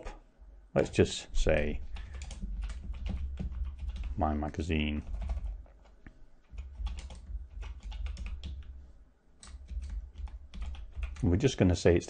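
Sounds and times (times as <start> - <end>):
typing on keyboard: 1.8 - 4.2, 4.9 - 8.7, 9.4 - 11.3.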